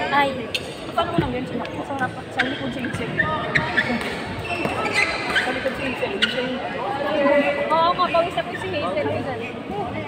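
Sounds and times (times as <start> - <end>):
voices chattering in hall: 0.0 - 10.0
shoes squeaking on court floor: 2.1 - 6.8.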